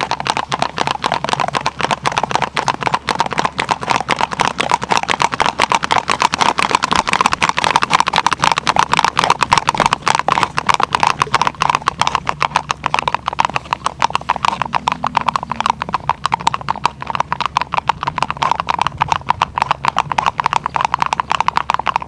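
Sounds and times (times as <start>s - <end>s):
horse hooves clicking on ice: 0.0s - 22.0s.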